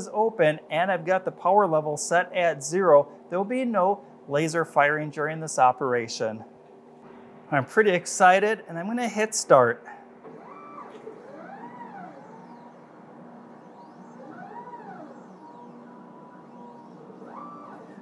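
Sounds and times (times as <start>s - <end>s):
stepper motor whine: 10.2s - 18.0s.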